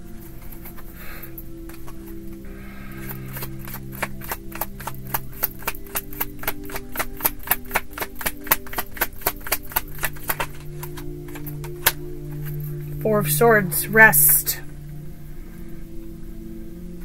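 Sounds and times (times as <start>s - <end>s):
soft background music: 0.0s - 17.0s
cards shuffling and slapping: 1.6s - 12.8s.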